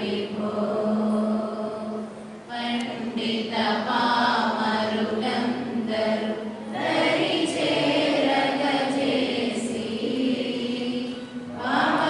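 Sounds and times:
women singing a chant: 0.0s - 12.0s.

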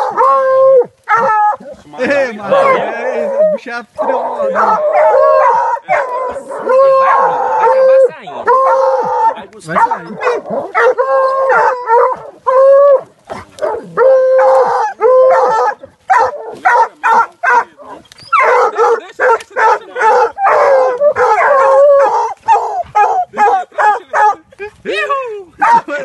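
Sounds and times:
dogs barking and baying: 0.0s - 24.5s, 25.6s - 26.0s.

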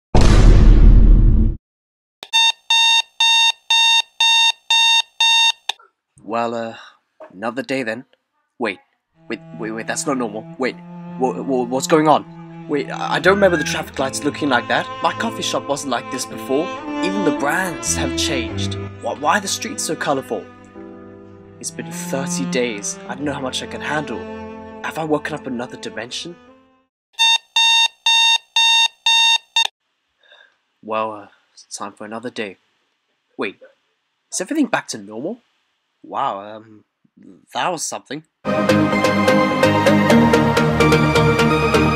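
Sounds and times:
alarm clock beeping: 2.2s - 5.8s, 27.2s - 29.7s.

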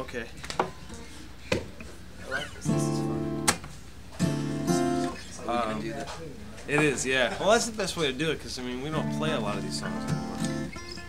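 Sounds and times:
acoustic guitar chord strummed: 2.6s - 3.6s, 4.2s - 5.2s, 8.9s - 11.0s.

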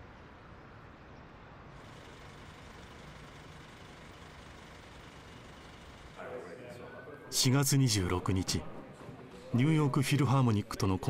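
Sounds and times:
city street traffic noise: 0.0s - 4.7s.

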